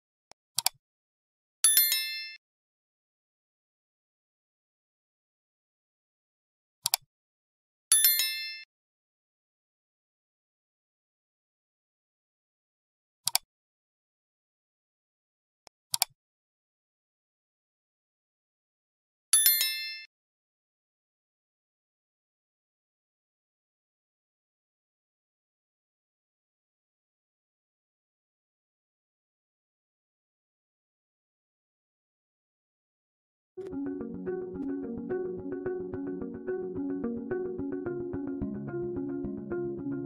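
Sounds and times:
mouse click: 0.6s - 0.8s, 6.8s - 7.0s, 15.9s - 16.1s
bright bell-like chime: 1.7s - 2.4s.

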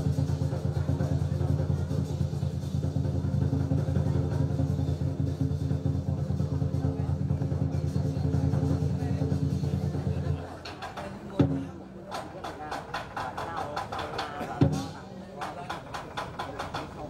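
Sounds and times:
drum roll: 0.0s - 17.0s.

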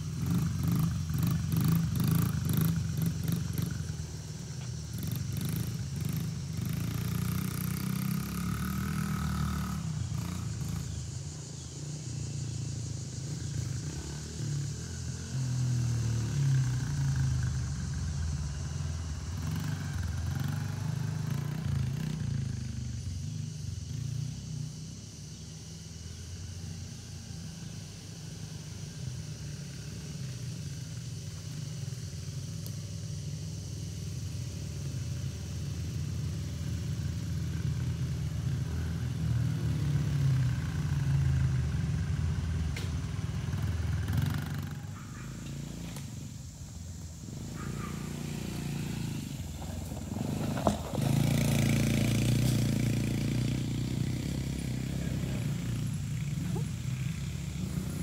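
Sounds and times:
dirt bike engine running: 0.0s - 25.4s, 28.8s - 58.0s.

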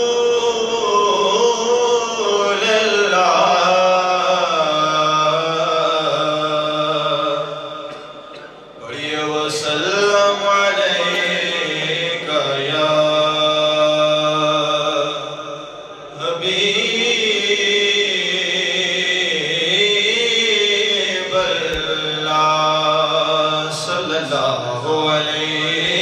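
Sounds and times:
man chanting into a microphone: 0.0s - 26.0s.

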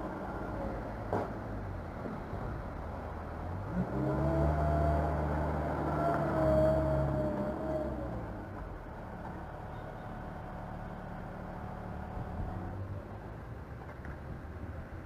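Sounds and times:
diesel engine pulling hard: 0.0s - 13.5s.

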